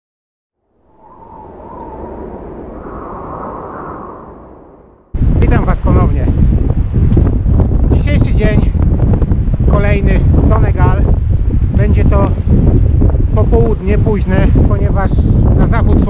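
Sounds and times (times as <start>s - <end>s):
wind buffeting microphone: 0.7s - 16.0s.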